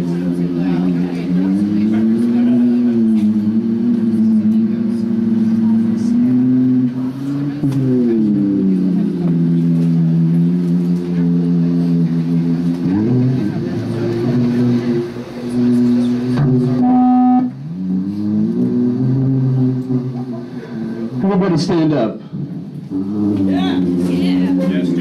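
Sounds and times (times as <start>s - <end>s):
synthesizer drone: 0.0s - 25.0s.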